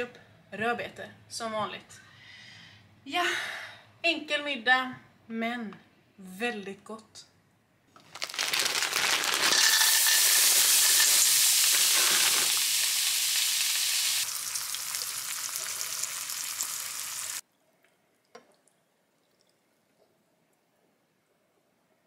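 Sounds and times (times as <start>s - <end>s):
food sizzling in a frying pan: 8.6s - 17.4s.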